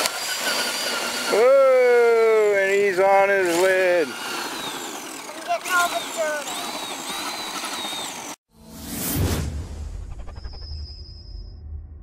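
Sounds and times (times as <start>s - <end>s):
electric motor whining: 0.0s - 8.4s
rising whoosh: 8.5s - 12.0s.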